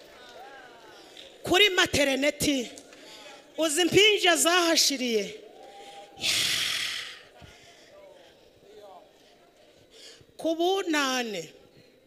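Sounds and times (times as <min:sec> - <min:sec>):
breath into microphone: 0:05.7 - 0:08.0, 0:09.2 - 0:10.4.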